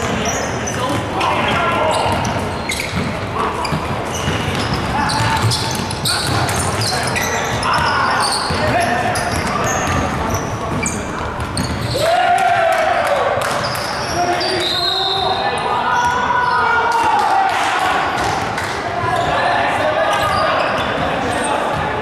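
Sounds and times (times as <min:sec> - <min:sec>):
players' voices in large hall: 0:00.0 - 0:22.0.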